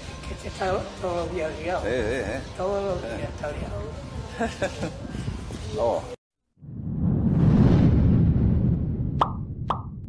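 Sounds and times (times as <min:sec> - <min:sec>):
low whooshing rush: 0:02.4 - 0:10.0.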